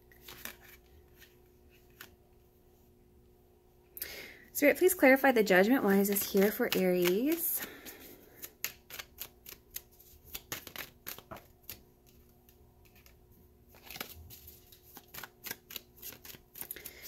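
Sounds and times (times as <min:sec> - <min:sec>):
cards being shuffled: 0:00.1 - 0:02.2, 0:05.9 - 0:17.0.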